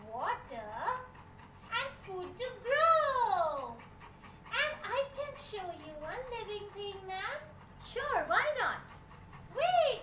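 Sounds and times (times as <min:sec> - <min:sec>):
woman's high-pitched puppet voice: 0:00.0 - 0:03.8, 0:04.5 - 0:10.0.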